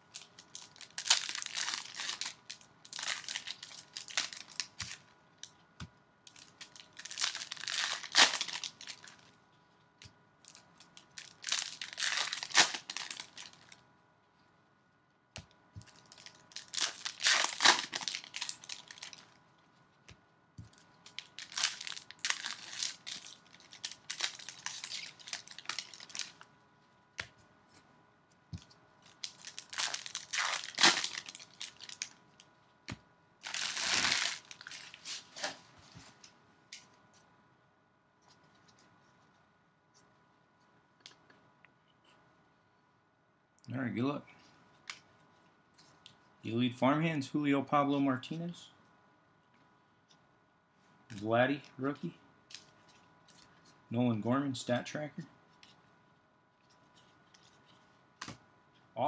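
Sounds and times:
foil wrappers torn and crumpled: 0.1s - 5.0s, 6.3s - 9.3s, 10.4s - 13.8s, 15.9s - 19.3s, 21.0s - 26.4s, 29.0s - 32.2s, 33.4s - 35.6s.

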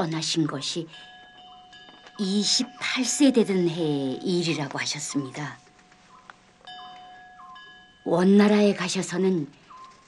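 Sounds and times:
bell-like note ringing: 0.0s - 10.0s
chime-like background music: 0.0s - 10.0s.

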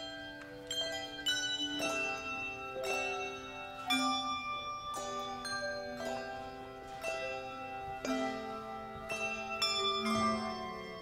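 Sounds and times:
handbell choir ringing: 0.0s - 11.0s.

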